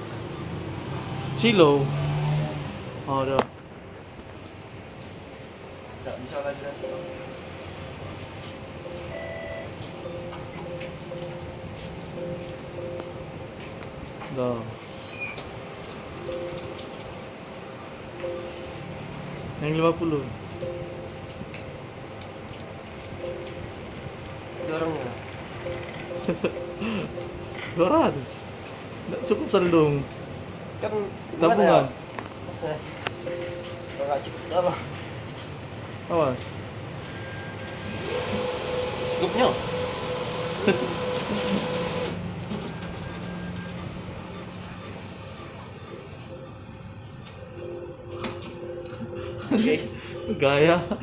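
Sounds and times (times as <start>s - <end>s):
steady background hum: 2.7s - 51.0s
low two-note tone: 18.0s - 21.5s, 23.2s - 28.4s
cash dispenser whirring: 37.0s - 44.7s.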